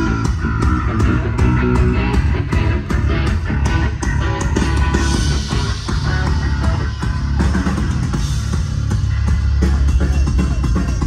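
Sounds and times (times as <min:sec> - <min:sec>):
bass guitar: 0:00.0 - 0:11.0
driving drum kit: 0:00.0 - 0:11.0
electric guitars: 0:00.0 - 0:11.0.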